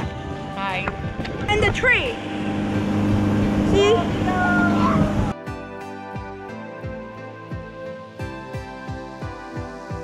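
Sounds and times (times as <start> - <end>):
motorboat engine running: 0.8 - 5.3.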